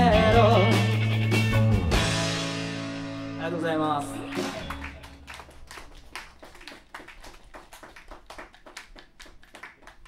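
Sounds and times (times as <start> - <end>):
sparse applause: 4.2 - 10.0.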